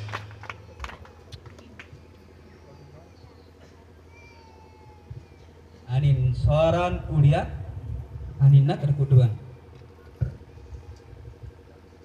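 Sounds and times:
public address system hum: 0.1 - 12.0
man speaking over loudspeakers: 5.9 - 7.8, 8.4 - 9.5.

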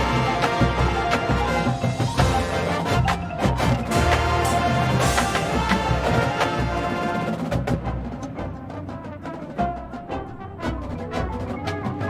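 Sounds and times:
brass line playing: 0.0 - 8.0.

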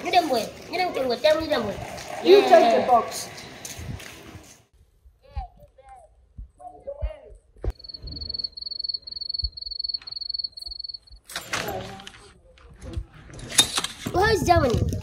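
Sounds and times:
high pulsing tone: 7.7 - 11.2.

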